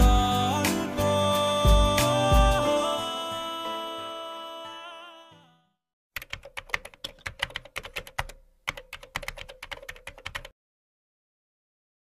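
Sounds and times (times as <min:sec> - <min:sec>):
keyboard key clicks: 0:06.2 - 0:10.5.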